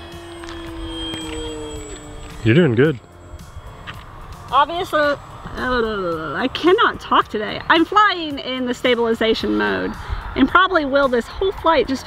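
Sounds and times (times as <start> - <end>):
model plane motor hum: 0.0 - 9.8.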